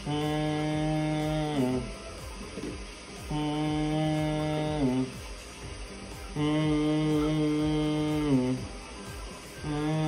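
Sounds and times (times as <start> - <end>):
low hummed chant: 0.0 - 10.0.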